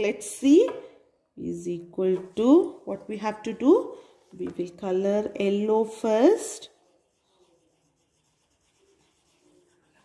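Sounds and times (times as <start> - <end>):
crayon rubbing on paper: 6.6 - 10.0.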